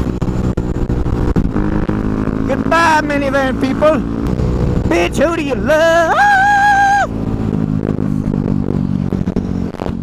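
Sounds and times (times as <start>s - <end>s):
dirt bike engine running: 0.0s - 10.0s.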